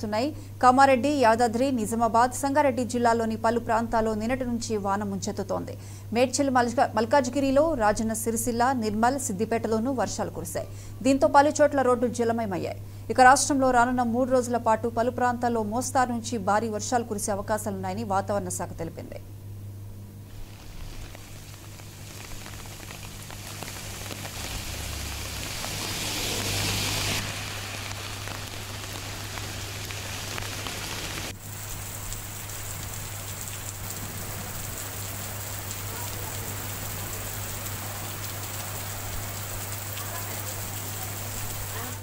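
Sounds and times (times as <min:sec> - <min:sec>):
low steady hum: 0:00.0 - 0:39.9
heavy rain pouring: 0:20.3 - 0:42.0.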